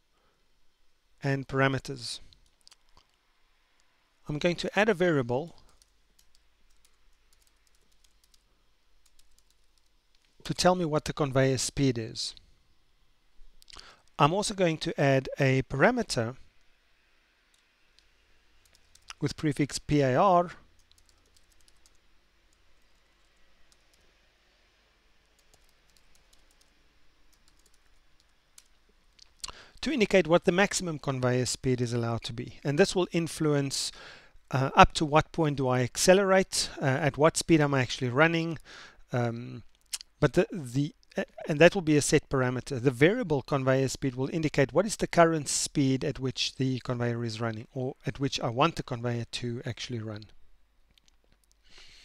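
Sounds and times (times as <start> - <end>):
low steady hiss: 0.0 - 52.0
faint keyboard typing: 2.2 - 3.2, 5.4 - 10.7, 18.6 - 19.4, 20.6 - 24.2, 25.2 - 29.8
typing on computer keyboard: 5.7 - 8.4, 9.0 - 9.9, 20.8 - 22.0, 25.4 - 26.8, 27.4 - 28.7.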